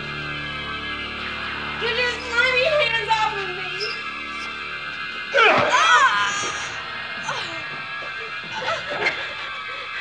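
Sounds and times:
background music score: 0.0 - 10.0.

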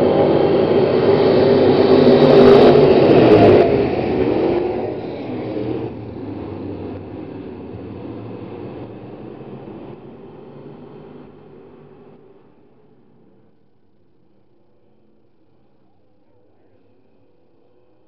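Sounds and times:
race car engines accelerating: 0.0 - 13.5.

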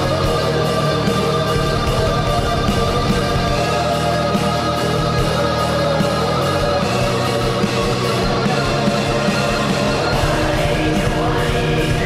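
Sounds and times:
choir-like vocals: 0.0 - 12.0
distorted guitar: 0.0 - 12.0
fast drumming: 0.0 - 12.0.

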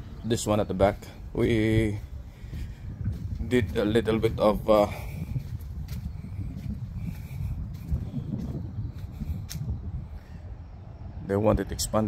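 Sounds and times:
wind on microphone: 0.0 - 12.0
faint footsteps on gravel: 0.4 - 9.8.

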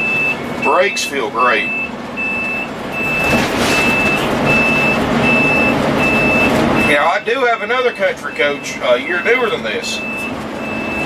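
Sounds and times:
road and engine noise: 0.0 - 11.0
turn-signal beeper: 0.0 - 11.0.

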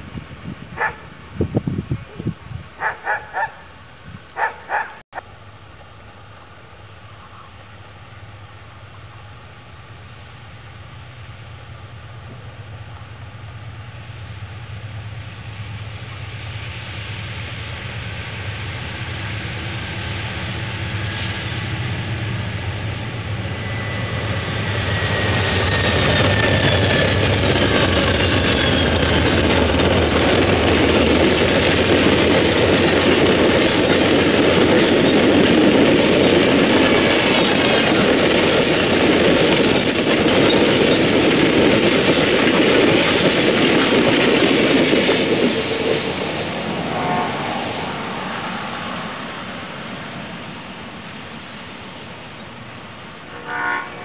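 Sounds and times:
diesel locomotive rumble: 0.0 - 54.0
steel wheels rushing on rail: 0.0 - 54.0.

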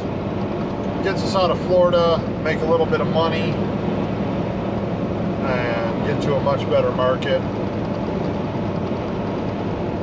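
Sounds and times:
truck engine and tyre drone: 0.0 - 10.0.

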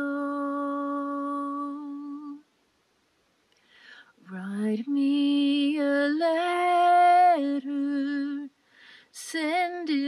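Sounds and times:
woman singing a long note: 0.0 - 2.4.

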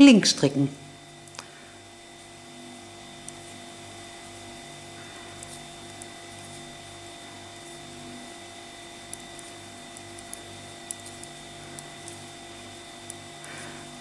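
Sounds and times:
pulsing electrical hum: 0.0 - 14.0
knitting needles clicking: 9.1 - 12.3.

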